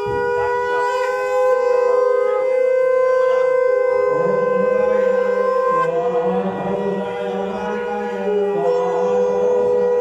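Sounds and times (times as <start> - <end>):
conch shell blown: 0.0 - 10.0.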